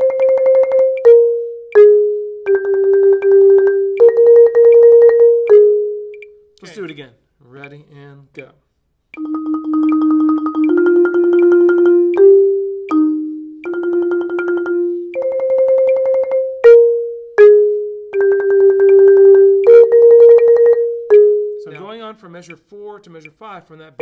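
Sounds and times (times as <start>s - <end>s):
marimba rolled notes: 0.0s - 6.4s, 9.2s - 21.9s.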